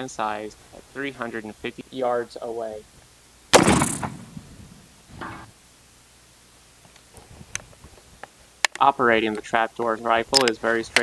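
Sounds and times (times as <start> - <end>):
rifle shot: 3.5 - 4.9.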